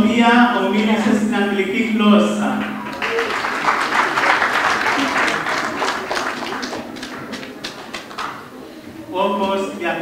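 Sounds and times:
audience applauding: 2.5s - 8.6s.

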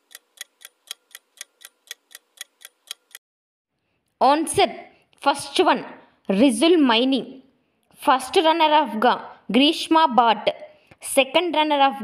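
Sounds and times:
countdown timer clock ticks: 0.0s - 3.2s.

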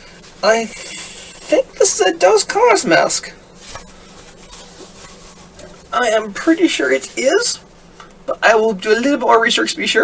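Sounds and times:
fabric mask rustling: 0.0s - 7.9s.

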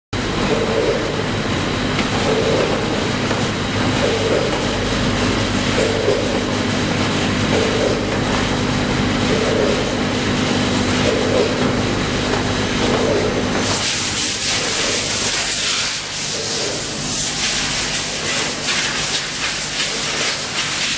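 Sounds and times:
machine hum: 0.2s - 20.5s
packing machine running: 0.2s - 20.9s.

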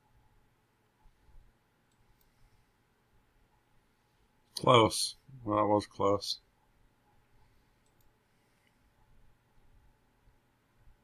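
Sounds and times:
computer mouse clicks: 1.0s - 2.4s, 7.1s - 9.1s.

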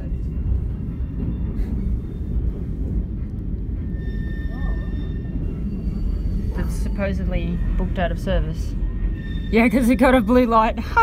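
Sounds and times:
train carriage rumbling on track: 0.0s - 11.0s.

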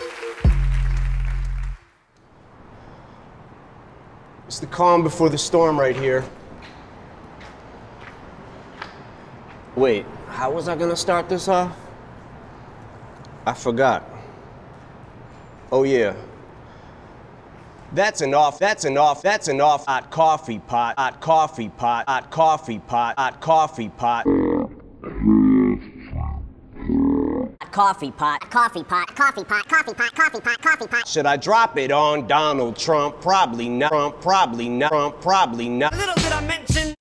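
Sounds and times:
footsteps on concrete: 5.9s - 9.7s.

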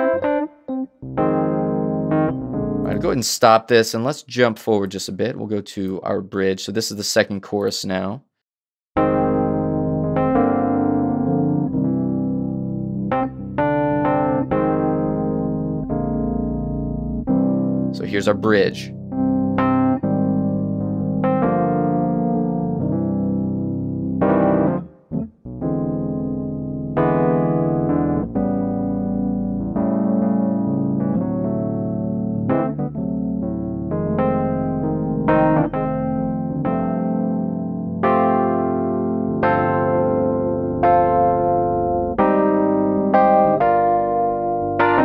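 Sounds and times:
electric piano chords: 0.0s - 3.6s, 9.0s - 45.0s
low bass notes: 0.0s - 6.5s, 9.0s - 45.0s.

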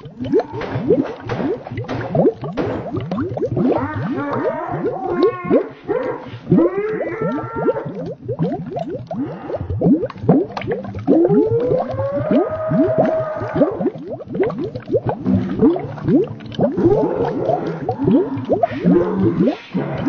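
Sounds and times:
slowed warped voice moaning: 3.5s - 8.2s, 9.0s - 10.0s, 10.8s - 14.0s, 15.2s - 20.0s.

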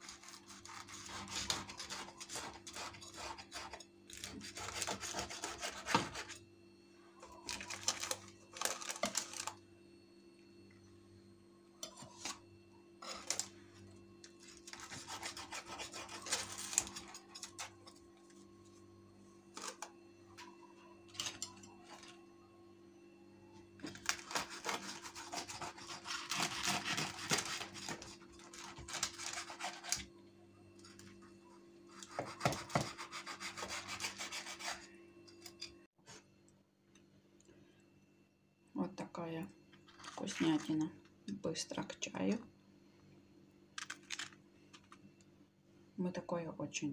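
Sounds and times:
knife sawing through crisp bread: 0.0s - 6.4s, 14.4s - 17.8s, 23.9s - 30.1s, 31.9s - 34.9s.

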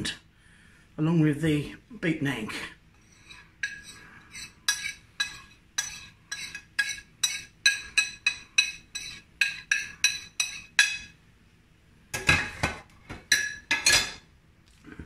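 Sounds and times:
metal spoon clinking on plate: 3.2s - 11.2s, 13.3s - 14.2s.

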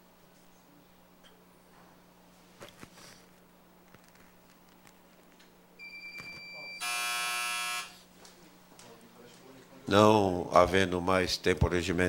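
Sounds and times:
high steady beep: 5.8s - 7.9s
harsh electric buzz: 6.8s - 8.0s.

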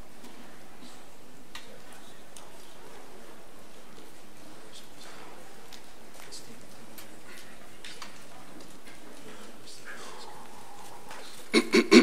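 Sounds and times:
faint ticks and rustles: 0.2s - 11.5s.

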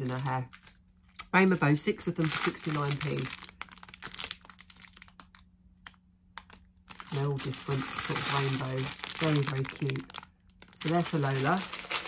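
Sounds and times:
plastic packet crinkling: 0.0s - 1.2s, 2.0s - 12.0s.

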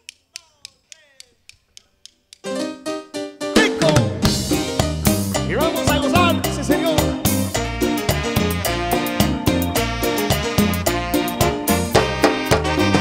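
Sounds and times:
drumstick clicks: 0.0s - 2.5s
horn and keyboard chords: 2.5s - 13.0s
bass and drums: 3.6s - 13.0s.

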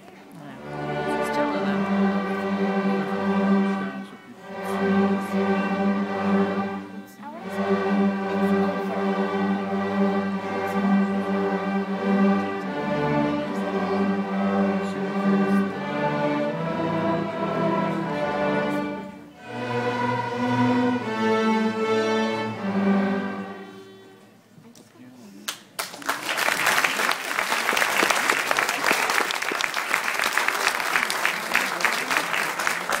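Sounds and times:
string orchestra playing slow piece: 0.0s - 25.3s, 26.9s - 33.0s.

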